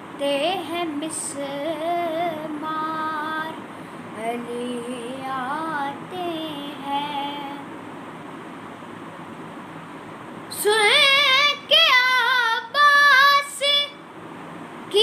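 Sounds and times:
boy singing unaccompanied: 0.2 - 3.6, 4.2 - 7.7, 10.5 - 14.0.

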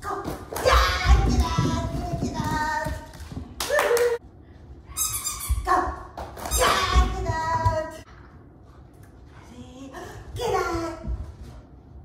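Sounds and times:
running feet thumping on floor: 0.5 - 3.7.

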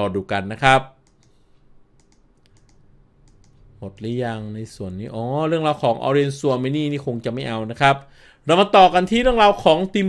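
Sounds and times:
computer keys clicking: 1.0 - 3.7.

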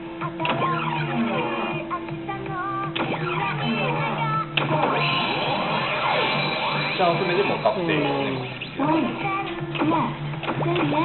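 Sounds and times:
slot machine electronic music: 0.0 - 1.9, 2.9 - 11.0.

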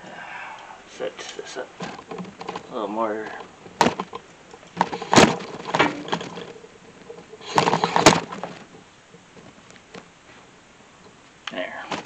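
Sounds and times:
rustling: 0.7 - 12.0.

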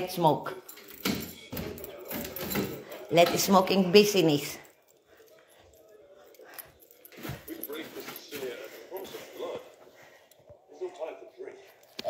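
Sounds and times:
faint voices talking: 0.0 - 12.0.

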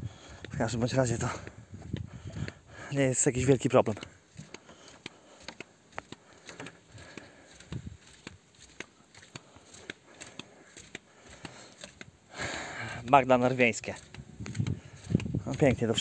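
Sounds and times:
footsteps on wooden boardwalk: 0.0 - 16.0.

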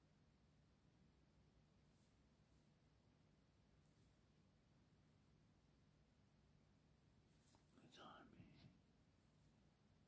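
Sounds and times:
person whispering: 7.5 - 8.8.

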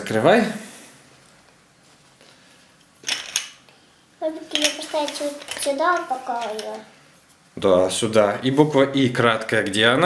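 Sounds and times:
plastic chips clattering on table: 3.0 - 3.6, 4.5 - 6.8.

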